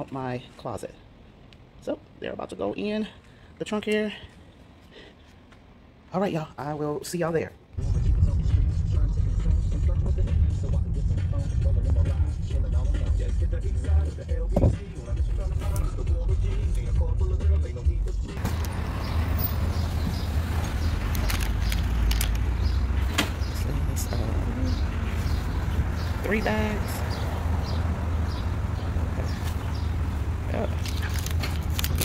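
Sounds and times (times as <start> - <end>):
outdoor noise: 0.0 - 32.0
car engine and road rumble: 7.8 - 32.0.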